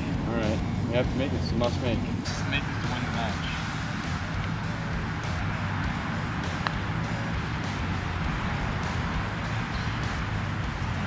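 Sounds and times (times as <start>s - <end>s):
low background rumble: 0.0s - 11.0s
putter striking golf ball: 6.5s - 6.9s.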